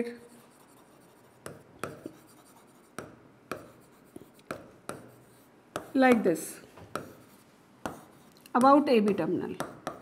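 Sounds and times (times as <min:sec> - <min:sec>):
pen tapping and scraping on whiteboard: 0:00.5 - 0:10.0.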